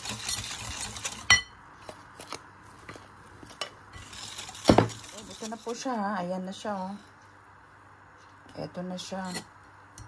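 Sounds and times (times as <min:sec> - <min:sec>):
mixing taps and scrapes: 0:00.0 - 0:06.1.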